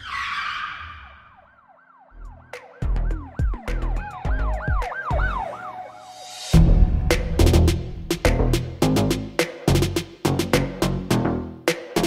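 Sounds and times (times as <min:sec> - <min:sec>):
siren-like tone: 0:00.0 - 0:06.6
whoosh: 0:06.0 - 0:08.8
heavy bass drum hits: 0:06.6 - 0:10.0.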